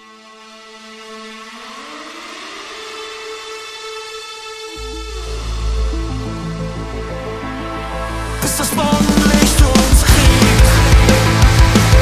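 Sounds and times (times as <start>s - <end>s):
held synthesizer chord: 0.0s - 12.0s.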